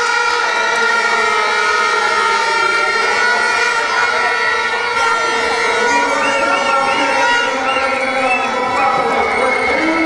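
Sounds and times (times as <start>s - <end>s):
crowd voices: 0.0s - 10.0s
steady siren-like tone: 0.0s - 10.0s.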